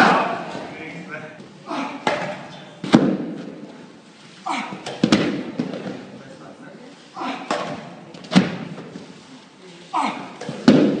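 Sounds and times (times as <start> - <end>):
ropes smacking gym floor: 2.0 - 3.8, 4.7 - 6.1, 10.4 - 11.0.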